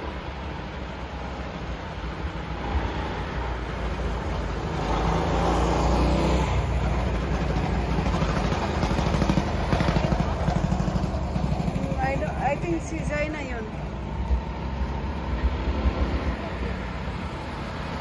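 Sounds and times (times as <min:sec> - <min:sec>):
go-kart engine passing: 0:04.2 - 0:18.0.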